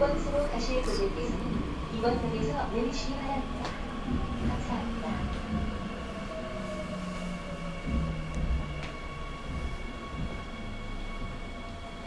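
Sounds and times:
subway car rumble: 0.0 - 12.0.

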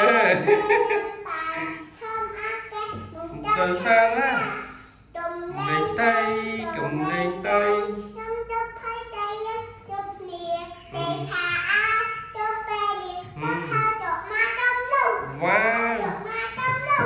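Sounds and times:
young girls singing: 0.1 - 17.0.

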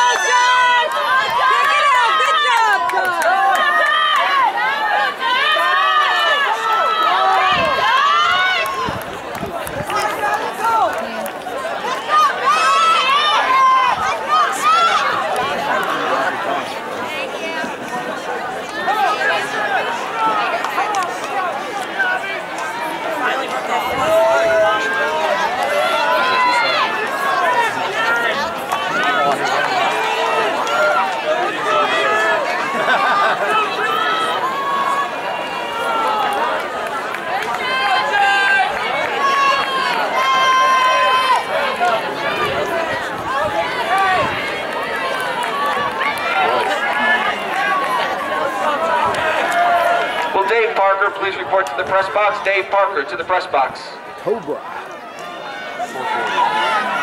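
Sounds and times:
loud shouts: 0.0 - 16.9, 18.4 - 57.0
crowd of spectators talking: 0.0 - 57.0.

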